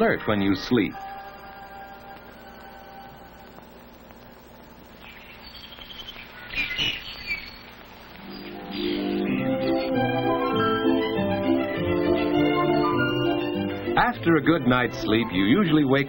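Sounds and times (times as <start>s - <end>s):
soft film soundtrack music: 0.0s - 6.3s, 7.2s - 16.0s
birds chirping: 0.0s - 16.0s.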